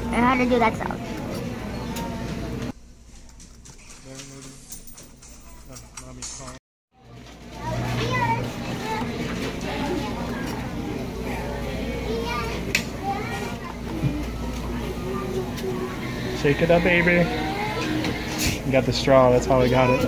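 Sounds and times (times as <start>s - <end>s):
chatter of many voices: 0.0s - 2.7s, 7.0s - 20.0s.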